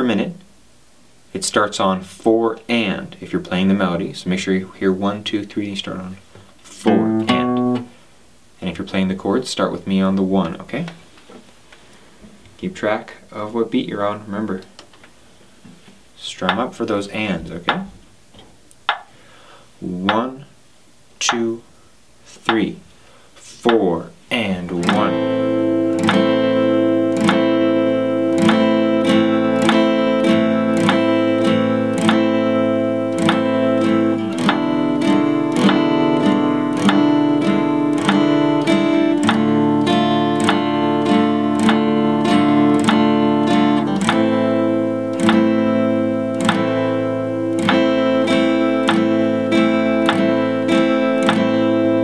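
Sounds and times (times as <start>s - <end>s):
acoustic guitar strumming chords: 1.7s - 11.4s, 22.3s - 52.0s.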